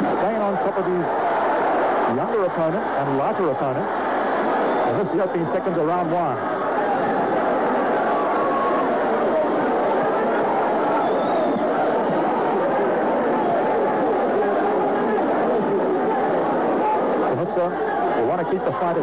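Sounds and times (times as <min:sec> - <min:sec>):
crowd shouting and talking: 0:00.0 - 0:19.0.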